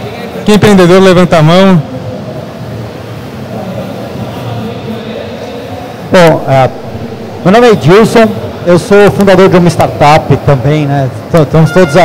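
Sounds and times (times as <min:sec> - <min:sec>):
exhibition hall background noise: 0:00.0 - 0:12.0.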